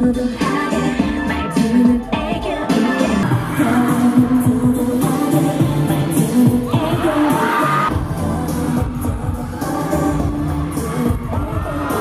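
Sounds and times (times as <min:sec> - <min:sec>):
pop backing track: 0:00.0 - 0:12.0
woman singing into a microphone: 0:00.0 - 0:12.0.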